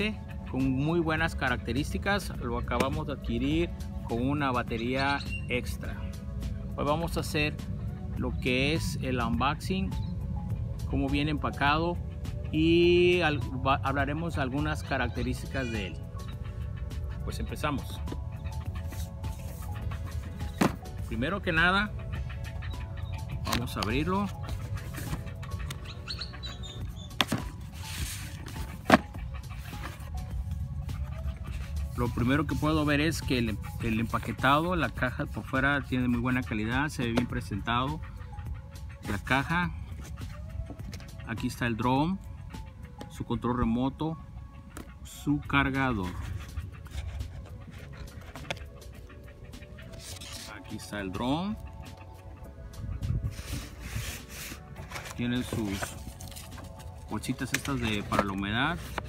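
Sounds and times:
soft background music: 0.0s - 59.0s
cardboard rustle: 53.4s - 59.0s.

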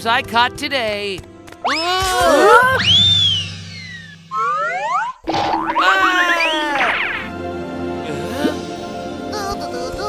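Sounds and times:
soft background music: 0.0s - 3.0s, 6.6s - 10.0s
falling whistle: 2.6s - 5.2s
rising whistle glides: 2.7s - 5.2s
springy boing glides: 3.4s - 7.2s.

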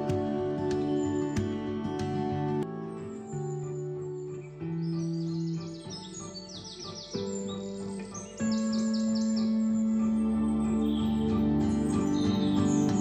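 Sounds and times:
music of held chords: 0.0s - 13.0s
high bird chirps: 2.9s - 13.0s.

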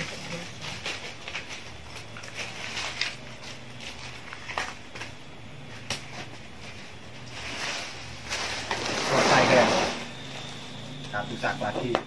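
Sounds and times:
corn husks rustling and crackling: 0.0s - 12.0s.

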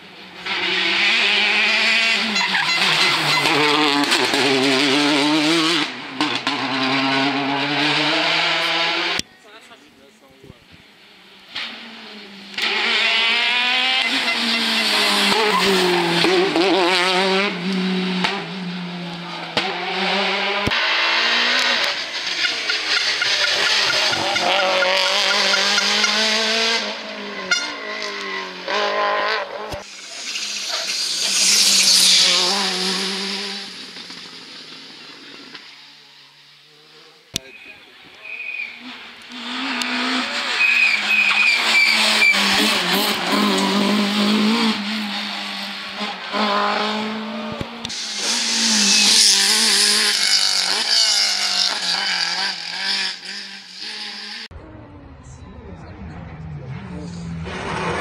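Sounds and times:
rally car engine revving past: 0.4s - 9.2s, 11.6s - 35.5s, 38.6s - 54.5s, 56.2s - 58.0s.

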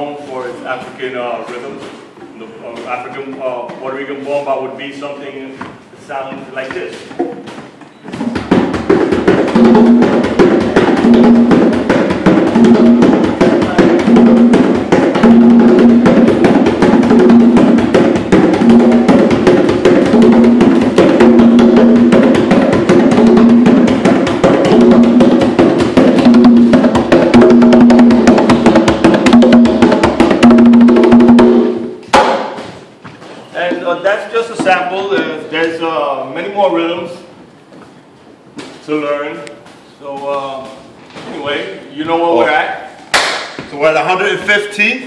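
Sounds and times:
congas played by hand: 0.0s - 4.5s, 5.5s - 35.9s, 40.6s - 44.8s.

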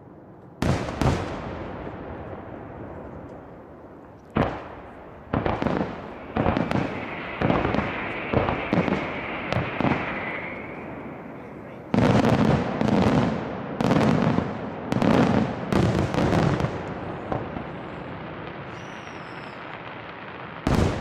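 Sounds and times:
fireworks bangs: 0.0s - 21.0s.

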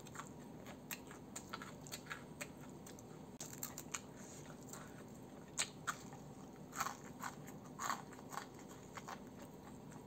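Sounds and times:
crispy fried chicken crunching: 0.0s - 10.0s.

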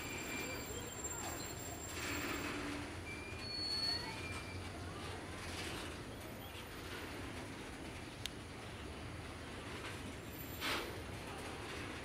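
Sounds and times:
high-pitched wheel squeals: 0.0s - 4.7s
train wheels rumbling on rails: 0.0s - 12.0s.

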